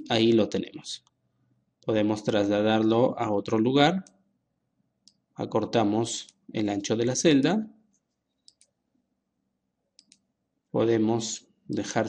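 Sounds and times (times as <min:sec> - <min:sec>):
computer mouse clicks: 0:05.0 - 0:05.2, 0:08.3 - 0:08.8, 0:10.0 - 0:10.3.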